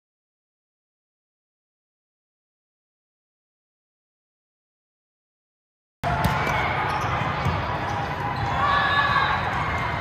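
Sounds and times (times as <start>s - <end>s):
volleyballs struck and bouncing: 6.0s - 8.6s
hubbub of voices: 6.0s - 10.0s.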